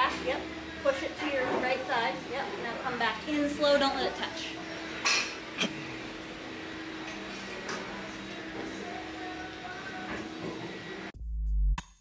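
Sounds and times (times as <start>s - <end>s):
steady low hum: 0.0s - 11.1s.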